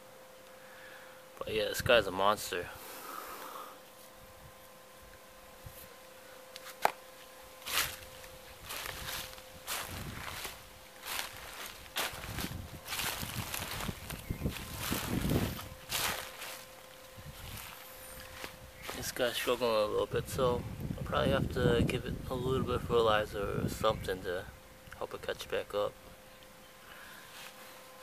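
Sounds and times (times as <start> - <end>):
faint steady hum: 0.0 - 28.0
footsteps crunching on dry grass: 6.6 - 20.5.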